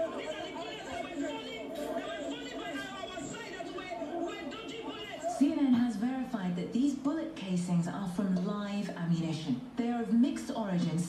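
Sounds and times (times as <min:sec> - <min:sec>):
chatter of voices: 0:00.0 - 0:06.4.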